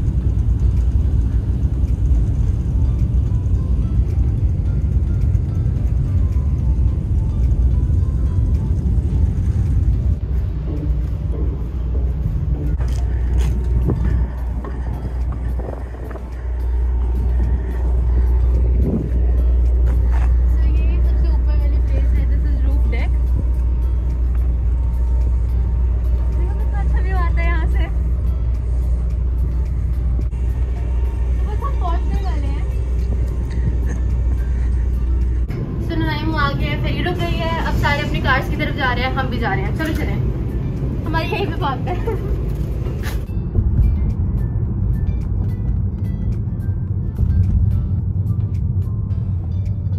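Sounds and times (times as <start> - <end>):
wind rumble on microphone: 0.0 - 49.9.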